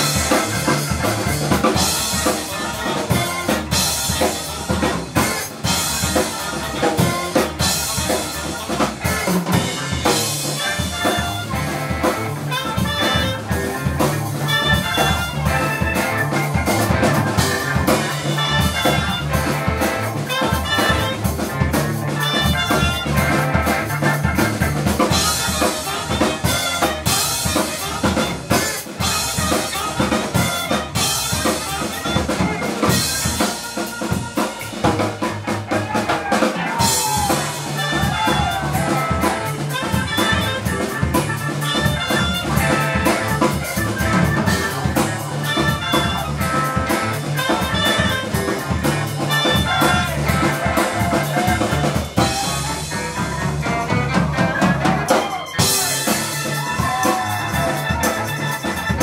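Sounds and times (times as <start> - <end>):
saxophone melody: 0.0 - 36.1, 36.7 - 59.0
drum kit groove: 0.0 - 59.0
electric bass: 0.0 - 59.0
electric guitar: 0.0 - 59.0
keyboard: 0.0 - 59.0.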